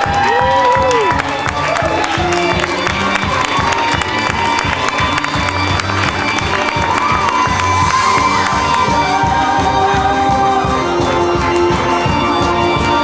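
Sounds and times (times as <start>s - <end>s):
audience cheering: 0.0s - 10.6s
music: 0.0s - 13.0s.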